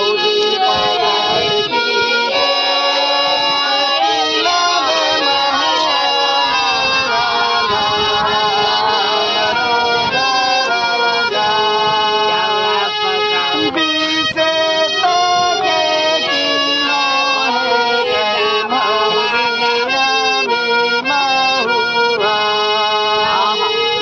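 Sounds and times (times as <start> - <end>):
harmonium chords: 0.0 - 24.0
man singing into a microphone: 0.0 - 24.0.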